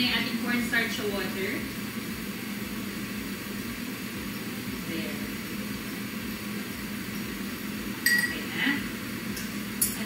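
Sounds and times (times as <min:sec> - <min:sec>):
exhaust fan whirring: 0:00.0 - 0:10.0.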